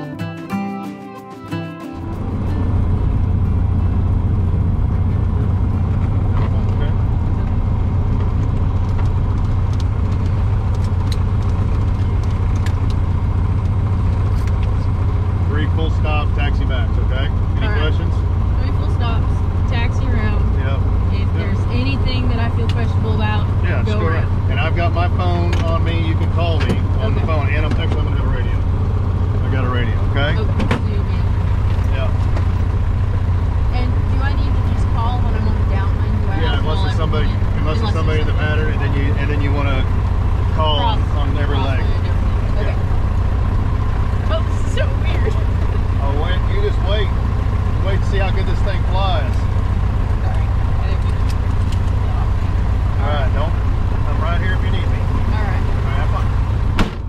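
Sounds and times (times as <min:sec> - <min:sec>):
airplane engine idling: 0:01.4 - 0:57.0
people talking: 0:06.3 - 0:07.0, 0:15.4 - 0:28.6, 0:29.4 - 0:31.3, 0:31.9 - 0:32.2, 0:33.7 - 0:39.9, 0:40.5 - 0:42.9, 0:44.3 - 0:47.2, 0:47.8 - 0:49.5, 0:50.2 - 0:52.4, 0:53.0 - 0:56.3.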